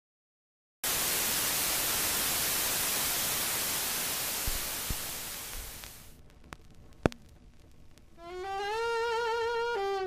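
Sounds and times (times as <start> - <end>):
static hiss: 0.8 - 10.0.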